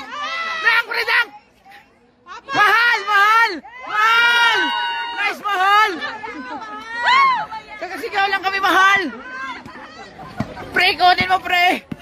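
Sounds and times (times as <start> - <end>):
spectators cheering shouts: 0.0 - 1.1, 2.3 - 10.4.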